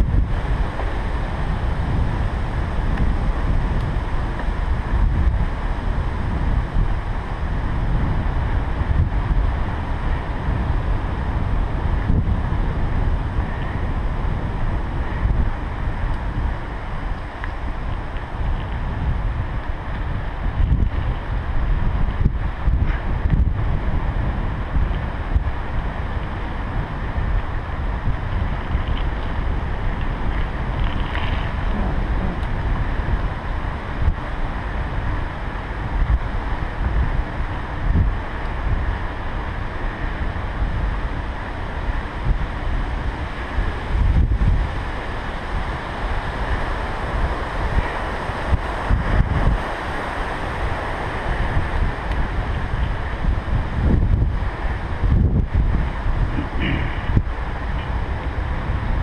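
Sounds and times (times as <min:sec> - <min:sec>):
tyres rolling on asphalt: 0:00.0 - 0:59.0
wind buffeting microphone: 0:00.0 - 0:59.0.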